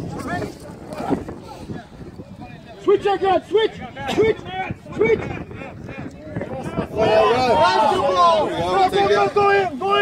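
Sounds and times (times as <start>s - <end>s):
faint shouted voices: 0.0s - 10.0s
wind rumble on microphone: 0.0s - 10.0s.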